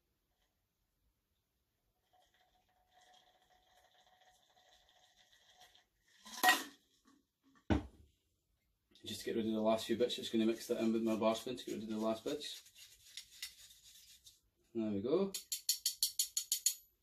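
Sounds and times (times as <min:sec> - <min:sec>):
liquid trickling through sieve: 0:02.0 - 0:06.3.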